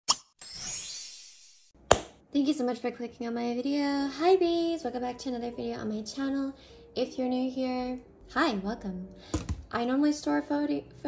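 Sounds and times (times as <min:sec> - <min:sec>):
sparkling shimmer effect: 0:00.4 - 0:01.7.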